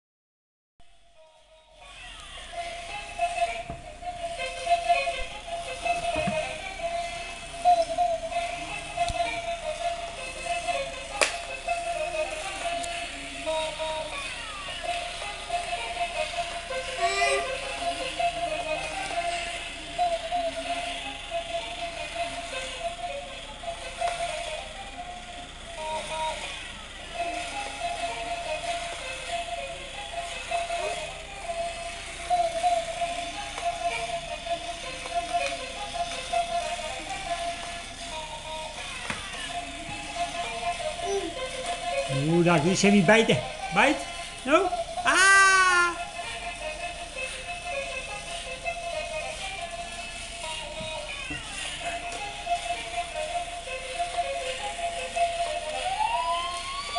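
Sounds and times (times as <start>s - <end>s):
toy playing electronic tune: 1.2s - 56.9s.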